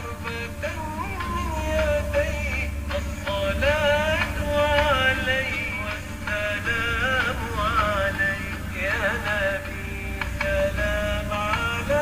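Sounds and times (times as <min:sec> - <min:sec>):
low steady drone: 0:00.0 - 0:12.0
solo voice singing: 0:00.0 - 0:12.0.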